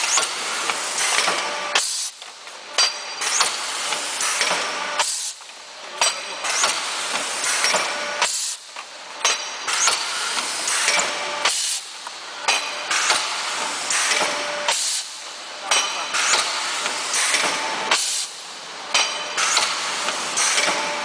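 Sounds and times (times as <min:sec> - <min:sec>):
machine mechanical noise: 0:00.0 - 0:21.0
hissing air blasts: 0:12.8 - 0:15.2.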